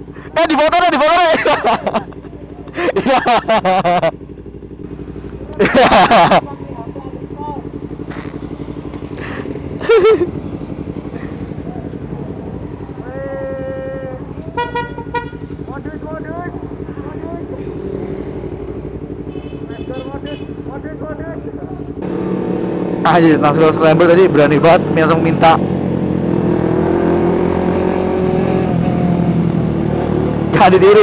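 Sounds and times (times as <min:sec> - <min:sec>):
motorcycles idling: 0:00.0 - 0:31.0
horn toot: 0:14.5 - 0:15.5.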